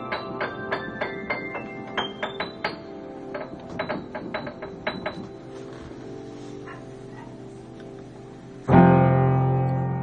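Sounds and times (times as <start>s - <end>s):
upright piano playing: 0.0s - 10.0s.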